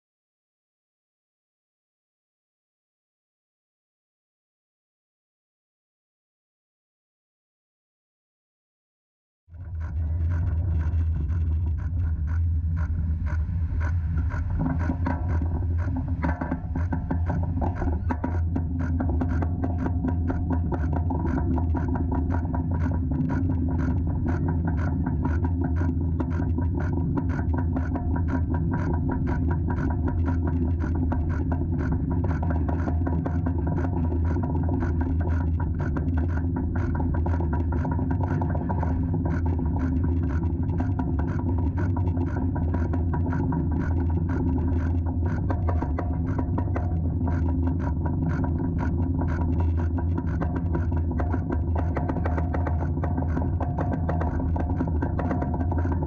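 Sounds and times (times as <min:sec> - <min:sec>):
roller coaster mechanical rumble: 0:09.5 - 0:56.0.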